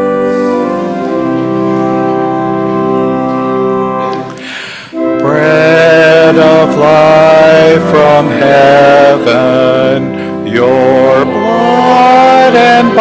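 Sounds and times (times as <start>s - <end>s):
organ accompaniment: 0.0s - 13.0s
congregation singing a hymn: 5.0s - 13.0s.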